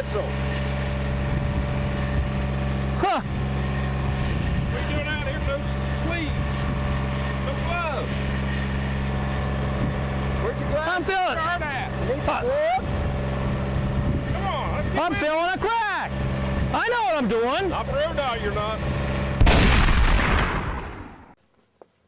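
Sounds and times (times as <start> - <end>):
voices talking: 0.0 - 19.3
engine humming: 0.0 - 21.4.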